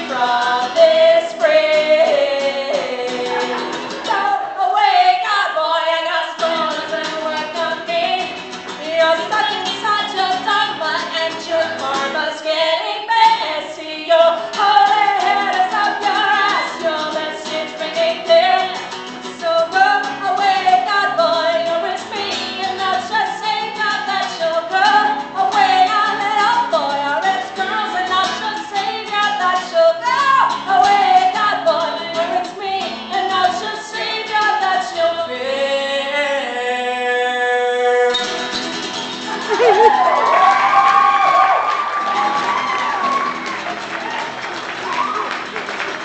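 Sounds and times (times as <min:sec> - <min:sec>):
acoustic guitar strumming: 0:00.0 - 0:12.6, 0:13.2 - 0:40.2, 0:42.0 - 0:46.0
girl singing backup: 0:00.0 - 0:37.3, 0:39.3 - 0:43.4
woman singing: 0:00.0 - 0:38.0.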